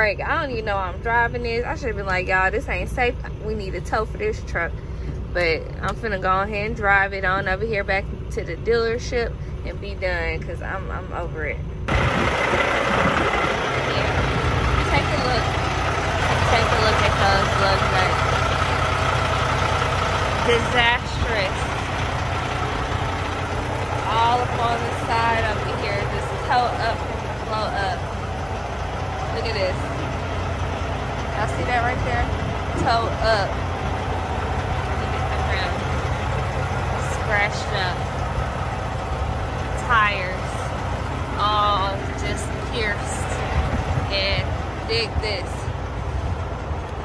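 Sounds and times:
truck engine idling: 0:00.0 - 0:47.0.

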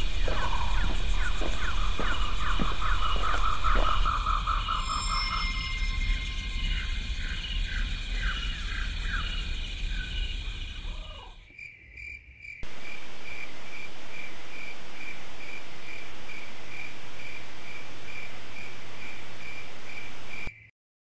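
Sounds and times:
steady hiss: 0:00.0 - 0:10.9, 0:12.6 - 0:20.5
falling calls: 0:00.0 - 0:11.4
insects chirping: 0:00.0 - 0:20.7.

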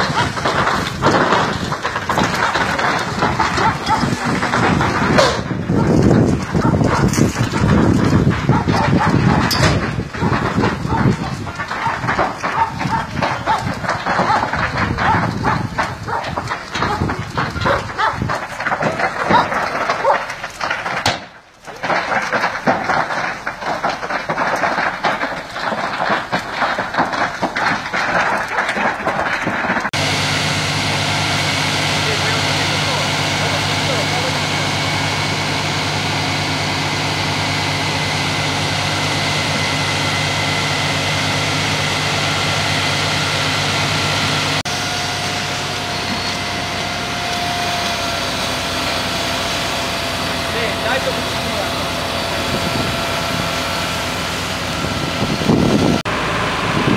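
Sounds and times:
dense irregular crackling: 0:00.0 - 0:44.7, 0:45.4 - 0:56.1
fire engine engine running: 0:00.0 - 0:56.9.

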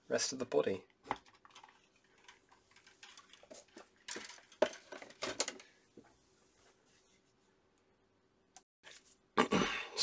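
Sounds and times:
hands handling small items: 0:01.0 - 0:06.0.

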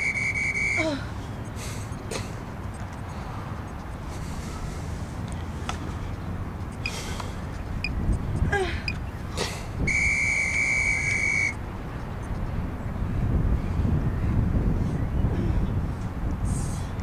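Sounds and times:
wind rumbling on microphone: 0:01.2 - 0:17.0.

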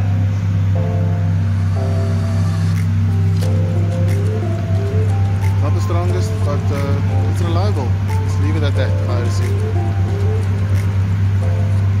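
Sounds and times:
faint music: 0:00.0 - 0:12.0
low mechanical hum of machinery: 0:00.0 - 0:12.0.

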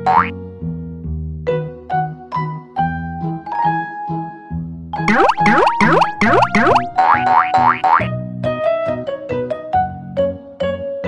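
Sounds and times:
cartoon boing sound effects: 0:00.0 - 0:00.3, 0:05.1 - 0:08.1
children's background music: 0:05.1 - 0:08.0.

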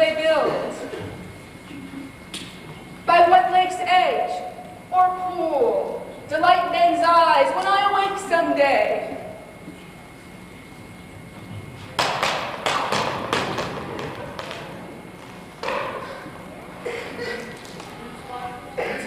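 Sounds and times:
thumps and taps on a stage: 0:12.0 - 0:16.1.

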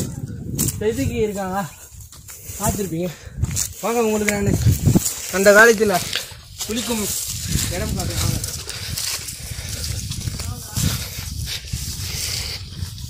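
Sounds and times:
rustle of movement on grass: 0:00.0 - 0:13.0
steady low rumble: 0:00.0 - 0:13.0.

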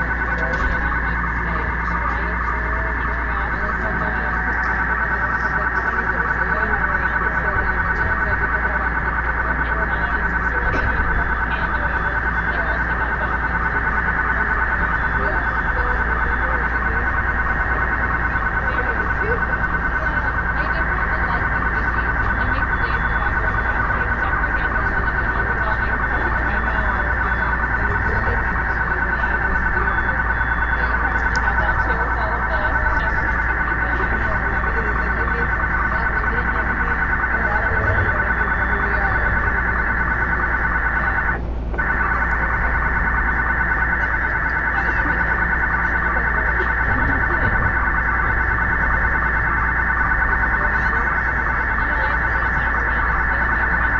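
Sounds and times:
chattering electronic data noise: 0:00.0 - 0:53.9.

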